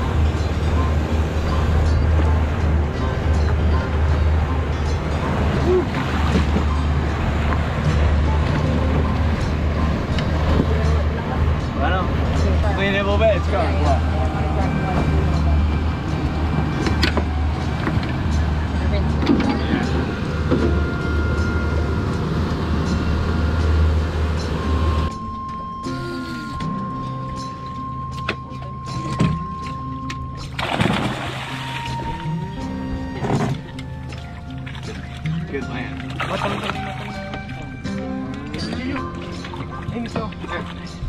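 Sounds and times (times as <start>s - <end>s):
wind and water rush: 0.0s - 25.4s, 28.6s - 41.0s
background music: 0.0s - 41.0s.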